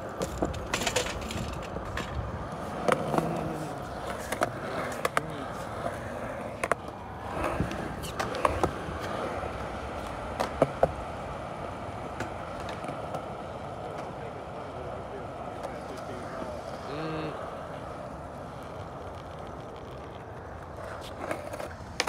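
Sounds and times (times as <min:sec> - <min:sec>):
skateboard clacking: 0:00.0 - 0:22.0
skateboard wheels rolling on concrete: 0:00.0 - 0:22.0.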